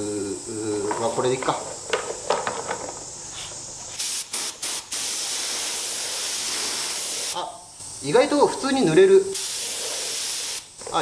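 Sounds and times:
spray gun hissing: 0:03.3 - 0:07.4, 0:09.3 - 0:10.8.

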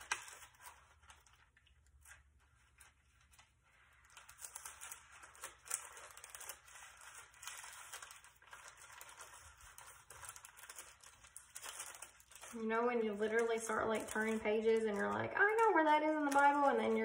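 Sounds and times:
thin pages rustling and flicking: 0:00.0 - 0:17.0.

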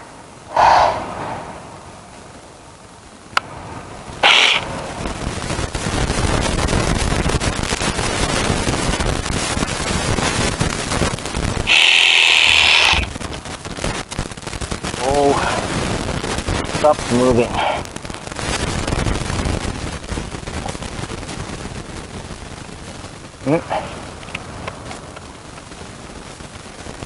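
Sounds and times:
reciprocating saw cutting wood: 0:04.2 - 0:04.7, 0:11.7 - 0:13.1.

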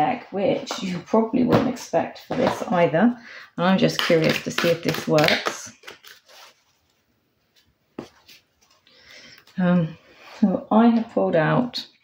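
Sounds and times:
card deck rustling: 0:04.1 - 0:06.9.

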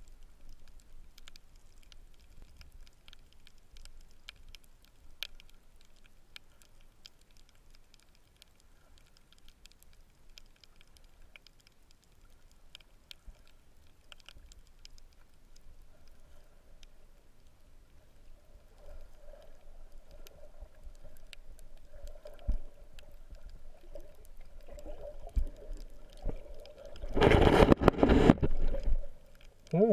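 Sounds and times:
faint scattered clicks: 0:00.0 - 0:29.9
faint steady hum: 0:00.0 - 0:29.9.

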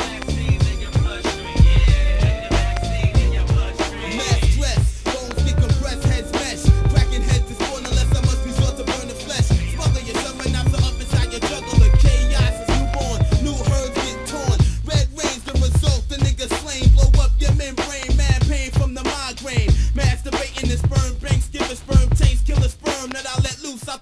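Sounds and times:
hip hop drum beat with bass: 0:00.0 - 0:24.0
rapped vocal: 0:00.0 - 0:24.0.

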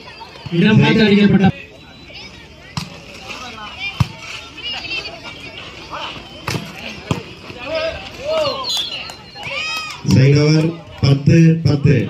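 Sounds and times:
voices shouting: 0:00.0 - 0:12.0.

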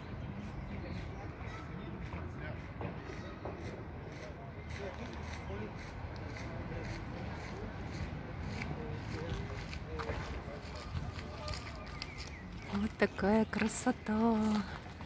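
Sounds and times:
faint indistinct voices: 0:00.0 - 0:15.0.

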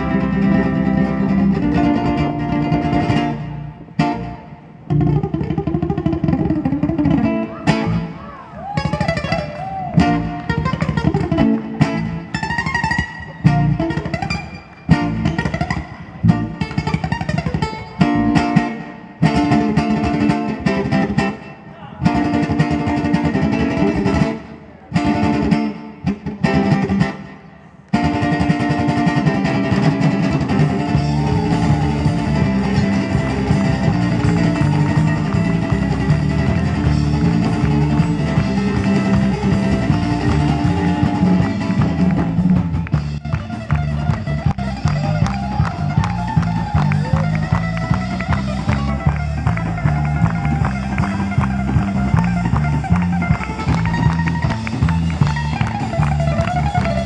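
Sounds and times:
ukulele picked notes: 0:28.0 - 0:57.0.

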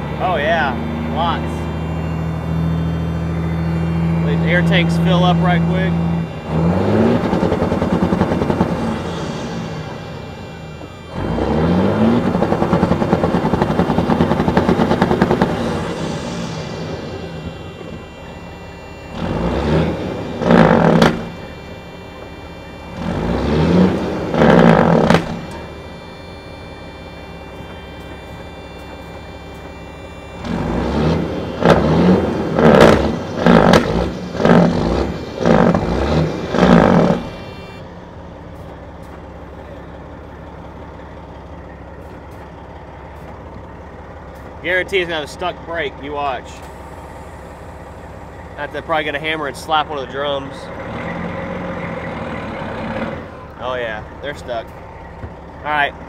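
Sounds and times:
diesel engine revving: 0:00.0 - 0:56.0.

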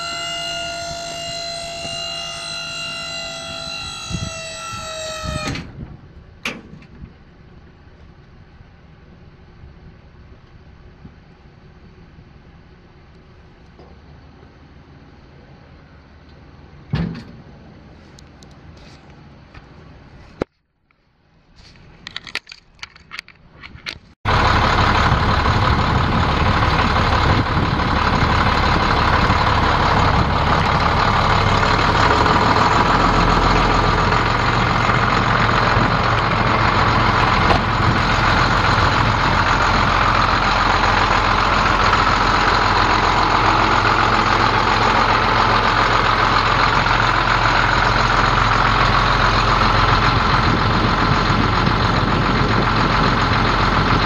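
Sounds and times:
diesel engine starting and idling: 0:00.0 - 0:20.2, 0:24.3 - 0:54.0.

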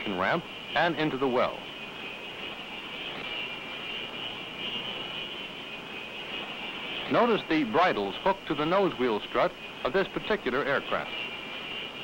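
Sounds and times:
jet engine whine and rush: 0:00.0 - 0:12.0.

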